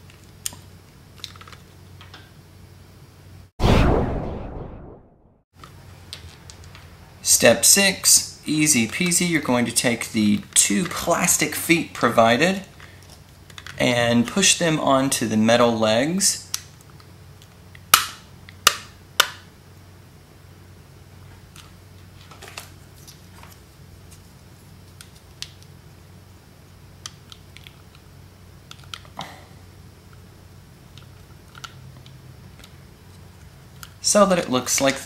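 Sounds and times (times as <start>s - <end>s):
plastic parts clicking: 28.7s - 29.2s, 30.9s - 32.8s.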